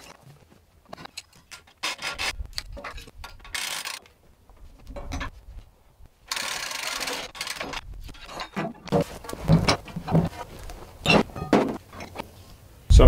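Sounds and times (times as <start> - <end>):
log knocking and scraping on steel: 0.0 - 5.7, 6.3 - 12.4
log shifting thuds: 7.2 - 12.3.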